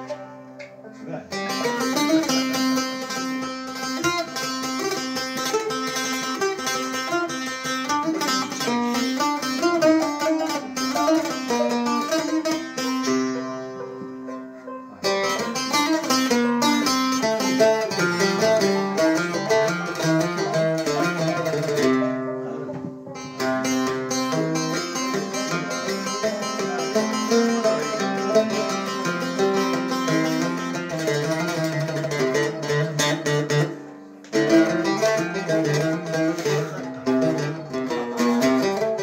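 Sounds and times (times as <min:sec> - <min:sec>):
banjo playing: 0:00.0 - 0:39.0
oud playing: 0:00.0 - 0:39.0.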